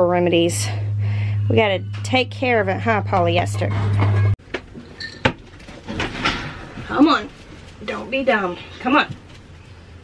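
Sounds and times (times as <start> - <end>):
sharp knocks and clatters: 3.7 - 6.9.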